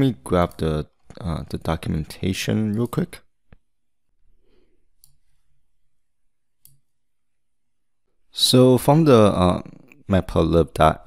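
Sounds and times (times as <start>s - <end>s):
computer mouse clicks: 5.0s - 5.3s, 6.6s - 6.9s.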